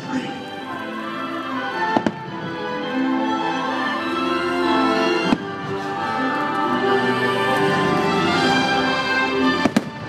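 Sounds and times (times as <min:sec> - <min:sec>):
music playing: 0:00.0 - 0:10.0
firework bangs: 0:01.8 - 0:02.6, 0:09.5 - 0:10.0.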